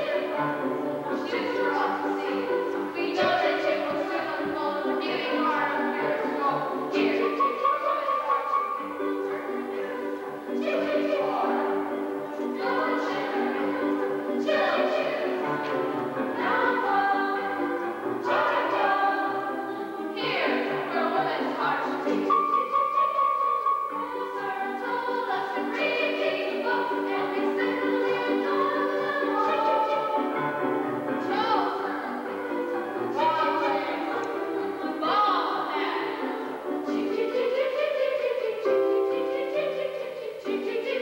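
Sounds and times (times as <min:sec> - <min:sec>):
chorus singing held notes: 0:00.0 - 0:41.0.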